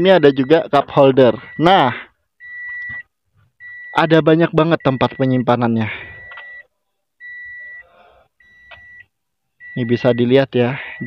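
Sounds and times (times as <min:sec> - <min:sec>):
car warning buzzer beeping: 0:00.0 - 0:00.7, 0:01.3 - 0:04.1, 0:06.2 - 0:06.6, 0:07.2 - 0:10.3.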